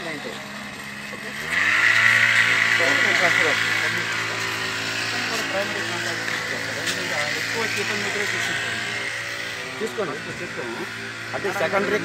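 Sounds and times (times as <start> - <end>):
engine revving: 0.0 - 12.0
voices talking: 0.0 - 12.0.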